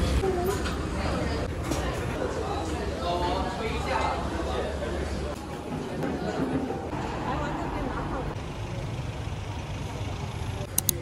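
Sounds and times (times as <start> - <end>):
sharp clicks: 10.7 - 11.0.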